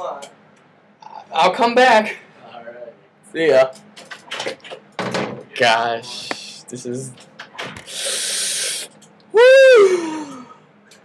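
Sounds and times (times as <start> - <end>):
hissing exhale: 7.8 - 8.9
short puff of breath: 7.8 - 8.9.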